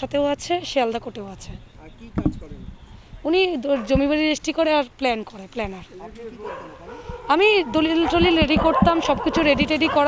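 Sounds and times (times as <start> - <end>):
dog barking: 3.7 - 4.1, 6.4 - 10.0.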